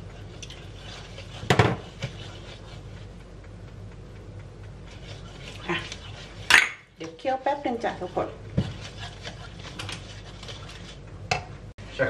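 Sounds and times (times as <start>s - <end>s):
spatula scraping sauce in pan: 0.0s - 3.2s, 4.8s - 11.0s
spatula knocking against pan: 1.2s - 2.2s, 6.4s - 10.0s.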